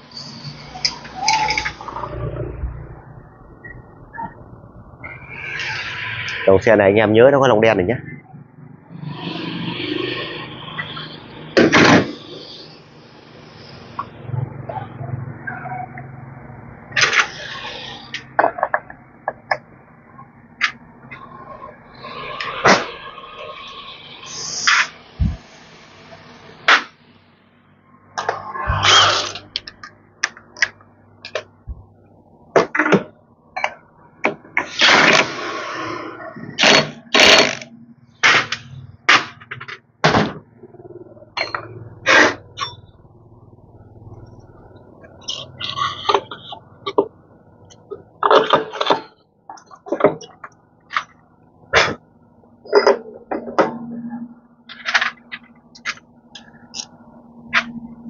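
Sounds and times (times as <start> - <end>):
metal scraping: 28.2 - 29.9
metal parts and tools clanking: 47.8 - 51.2, 52.6 - 53.8, 54.7 - 57.8.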